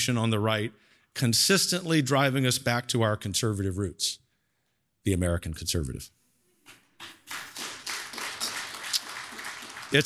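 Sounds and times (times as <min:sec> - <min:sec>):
audience applause: 0:07.3 - 0:10.0.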